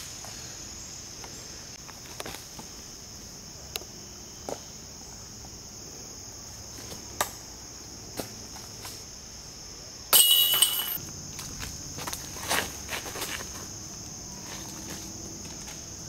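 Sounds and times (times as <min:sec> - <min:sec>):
insects droning: 0:00.0 - 0:16.0.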